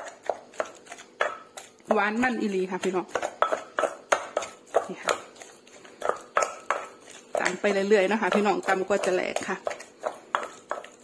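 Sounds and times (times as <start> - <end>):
pestle pounding in a mortar: 0.0 - 11.0.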